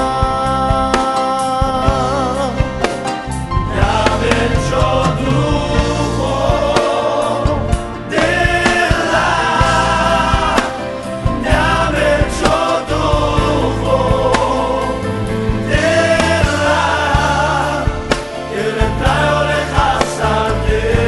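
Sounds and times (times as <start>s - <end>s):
band with bass and drums: 0.0s - 21.0s
choir singing gospel: 0.0s - 21.0s.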